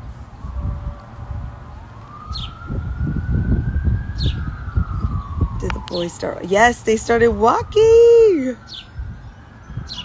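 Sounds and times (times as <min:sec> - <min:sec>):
siren wailing: 0:00.3 - 0:10.0.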